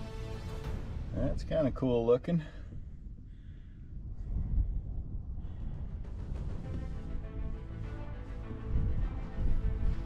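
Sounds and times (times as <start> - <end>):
wind buffeting microphone: 1.0 - 10.0.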